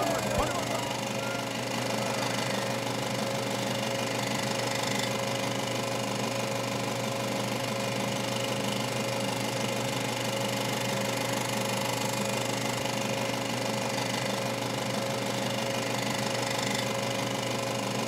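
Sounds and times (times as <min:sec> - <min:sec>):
rhythmic machine drone: 0:00.0 - 0:05.7.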